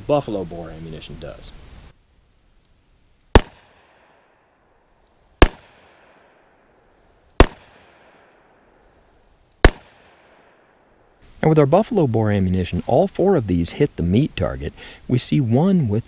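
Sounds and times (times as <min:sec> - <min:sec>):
revolver shots: 0:03.4 - 0:04.2, 0:05.4 - 0:06.3, 0:07.4 - 0:08.3, 0:09.6 - 0:10.4.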